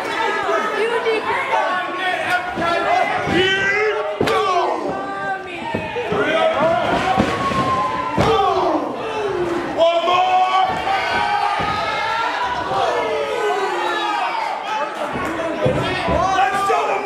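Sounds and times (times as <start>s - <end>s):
crowd shouting: 0.0s - 17.0s.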